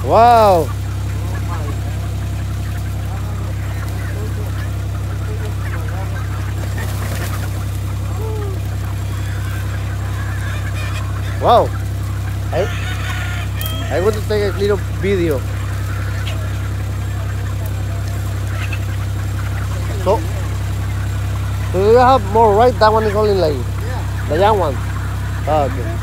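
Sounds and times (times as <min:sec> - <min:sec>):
chickens calling: 0:00.0 - 0:26.0
steady low hum: 0:00.0 - 0:26.0.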